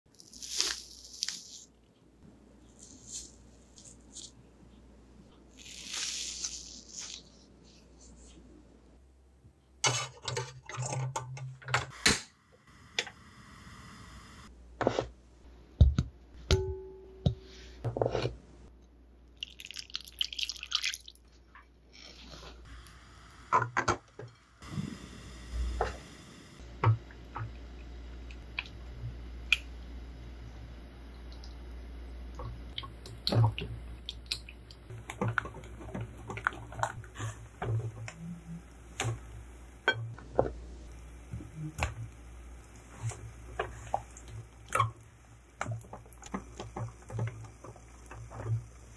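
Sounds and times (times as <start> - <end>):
gas burner hissing: 11.9 - 14.5, 22.6 - 28.2
steady low hum: 22.5 - 48.9.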